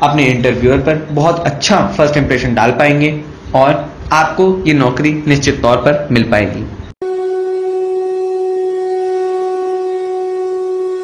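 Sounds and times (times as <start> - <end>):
steady horn-like tone: 7.0 - 11.0.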